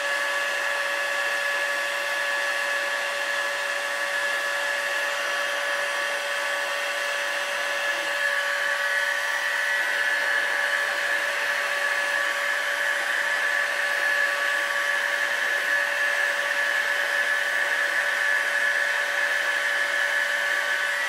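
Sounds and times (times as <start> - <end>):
heat gun blowing air with whine: 0.0 - 21.0.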